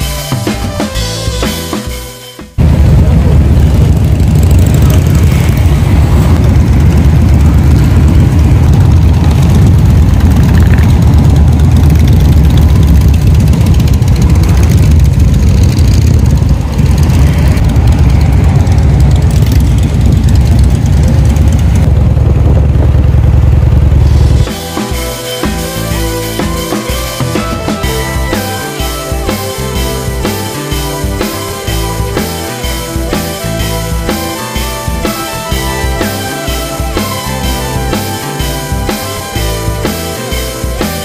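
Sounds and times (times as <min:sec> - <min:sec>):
motorcycle engine running: 0:00.0 - 0:41.0.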